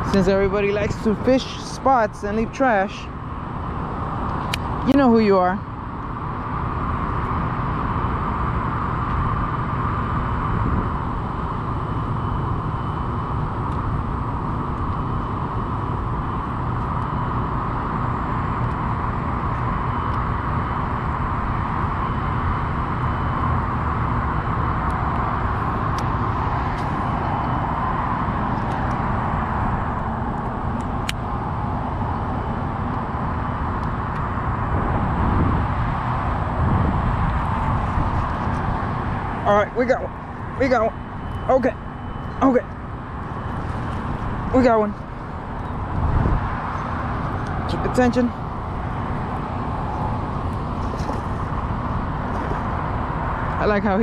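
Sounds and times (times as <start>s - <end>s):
wind buffeting microphone: 0.0s - 41.2s, 41.8s - 53.9s
low background hum: 0.0s - 54.0s.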